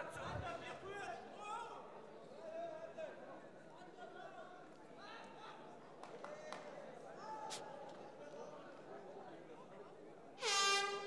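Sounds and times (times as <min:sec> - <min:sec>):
short horn blast: 0:10.4 - 0:11.0.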